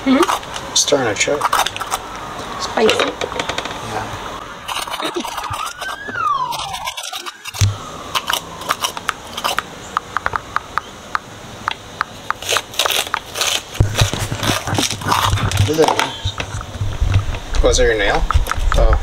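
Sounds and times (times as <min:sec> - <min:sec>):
metal spoon scraping peppers: 0:00.0 - 0:02.0, 0:04.6 - 0:09.7, 0:12.2 - 0:16.8.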